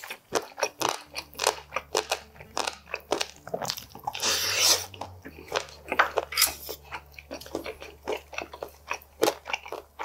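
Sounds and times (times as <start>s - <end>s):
chewing with mouth clicks and crunches: 0.0s - 10.0s.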